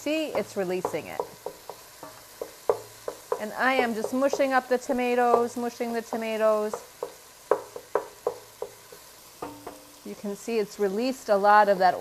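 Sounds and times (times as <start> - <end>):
light sizzle: 0.0 - 12.0
utensil knocking against pot: 0.2 - 5.6, 6.7 - 9.9.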